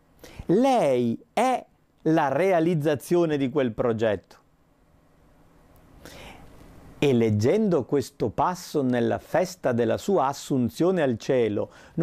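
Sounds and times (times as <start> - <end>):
man breathing in: 0.2 - 0.5, 6.0 - 6.6, 11.7 - 12.0
man talking: 0.5 - 4.4, 7.0 - 12.0.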